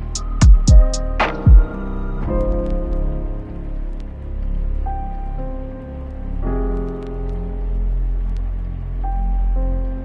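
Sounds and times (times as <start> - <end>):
soft keyboard chords: 0.0 - 10.0
rain: 2.1 - 10.0.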